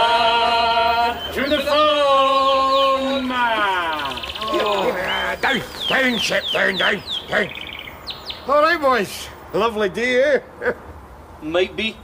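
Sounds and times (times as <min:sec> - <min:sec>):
bird-like chirps: 0:01.0 - 0:08.8.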